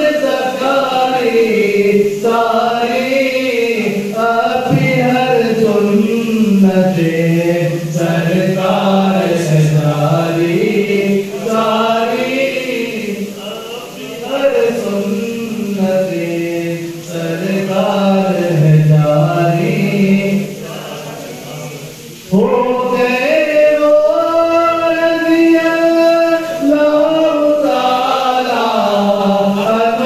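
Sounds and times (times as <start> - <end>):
man singing unaccompanied: 0.0 - 30.0.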